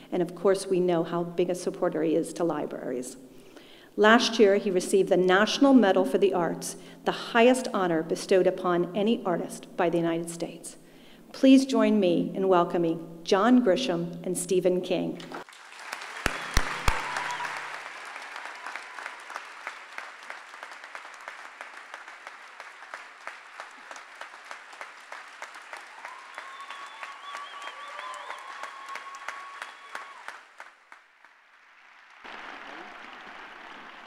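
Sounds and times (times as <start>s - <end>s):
audience applauding: 15.4s - 34.0s.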